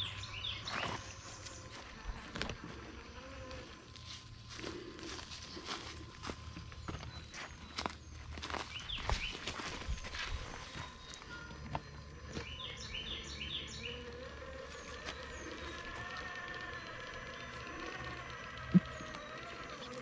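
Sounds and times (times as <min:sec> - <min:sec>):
bird chirps: 0:00.0 - 0:02.2, 0:06.2 - 0:20.0
footsteps in dry leaves: 0:00.6 - 0:11.4.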